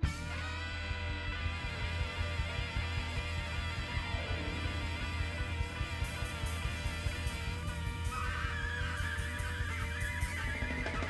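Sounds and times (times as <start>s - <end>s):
reggae band bass and drums: 0.0s - 11.0s
saxophone playing high line: 0.0s - 11.0s.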